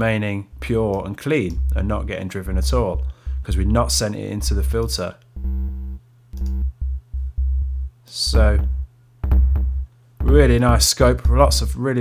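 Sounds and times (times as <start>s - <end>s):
distorted synth kick drum: 1.5s - 11.8s.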